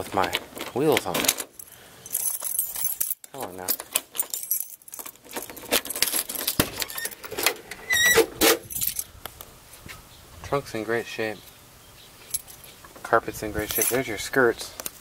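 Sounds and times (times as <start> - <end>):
car keys jangling: 1.5 - 7.4, 8.6 - 9.1, 12.2 - 12.7.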